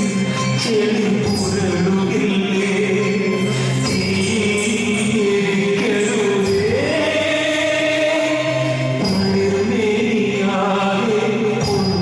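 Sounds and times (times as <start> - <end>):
folk dance music accompaniment: 0.0 - 12.0.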